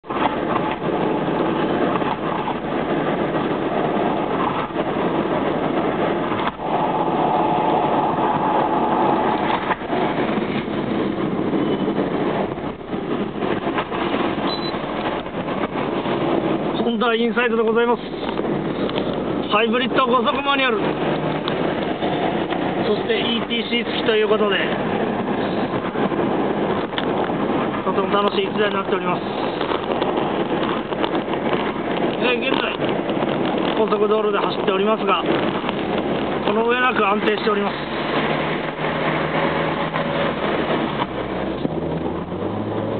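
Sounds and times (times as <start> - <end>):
car engine cruising: 0.0 - 42.9
wind noise: 0.0 - 42.9.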